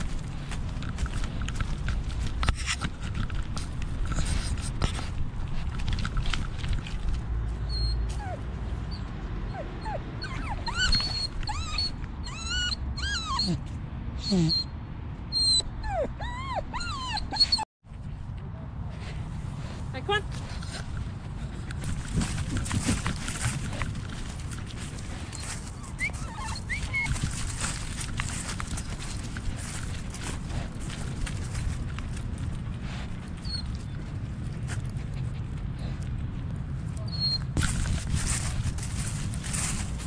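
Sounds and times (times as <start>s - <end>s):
dog pawsteps rustling through grass: 0.0s - 8.3s, 19.2s - 35.4s, 37.6s - 40.0s
rumble of body movement: 0.0s - 9.3s, 17.9s - 40.0s
dog whining: 7.6s - 17.7s, 25.0s - 29.9s, 37.0s - 37.5s.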